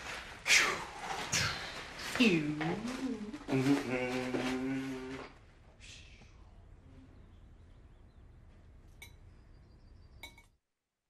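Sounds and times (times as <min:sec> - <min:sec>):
man humming low: 0:03.2 - 0:07.2.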